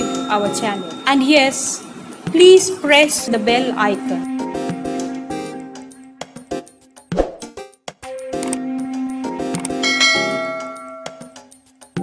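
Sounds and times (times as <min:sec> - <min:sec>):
metallic notification bell ding: 0:00.0 - 0:01.8, 0:09.8 - 0:11.5.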